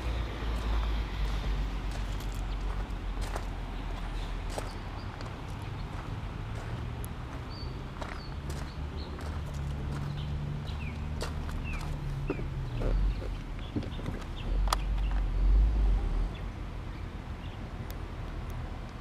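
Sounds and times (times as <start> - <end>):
steady low rumble: 0.0 - 19.0
footsteps crunching on gravel: 0.5 - 14.3.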